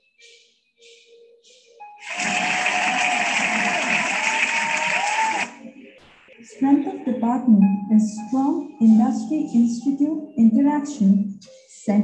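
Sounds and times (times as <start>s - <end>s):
small group applauding: 2.0s - 6.1s.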